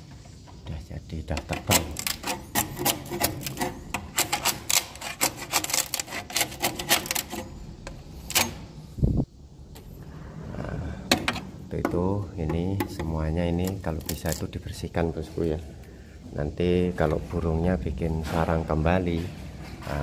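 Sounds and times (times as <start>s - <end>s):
metal scraper prying nest: 1.3s - 7.6s.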